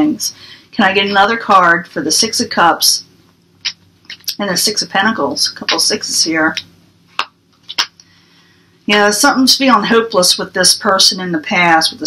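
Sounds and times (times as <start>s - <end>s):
woman speaking: 0.0s - 3.1s, 4.1s - 6.7s, 8.9s - 12.0s
tarot cards clicking: 7.2s - 7.9s.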